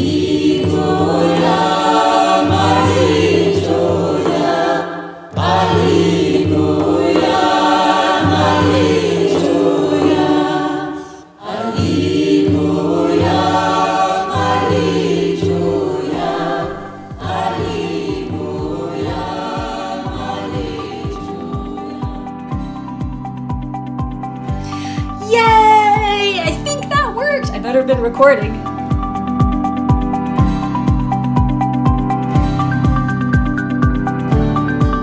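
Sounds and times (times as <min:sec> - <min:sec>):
choir singing: 0:00.0 - 0:23.2.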